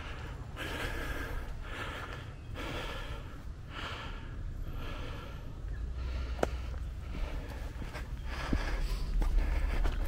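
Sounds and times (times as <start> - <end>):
person breathing hard: 0.0 - 10.0.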